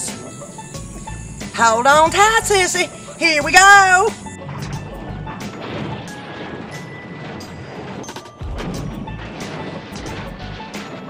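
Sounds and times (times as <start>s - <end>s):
film music: 0.0s - 11.0s.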